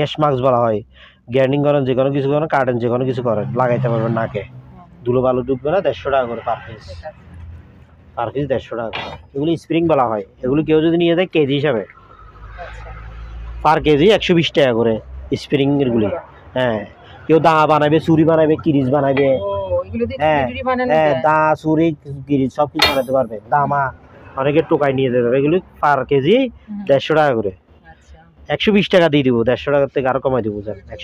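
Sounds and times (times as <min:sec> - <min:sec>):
people talking: 0:00.0 - 0:04.5, 0:05.1 - 0:07.1, 0:08.2 - 0:11.9, 0:13.7 - 0:31.0
sharp metallic clang: 0:08.9 - 0:09.4, 0:22.8 - 0:23.5
person talking: 0:18.6 - 0:21.4, 0:22.7 - 0:23.5.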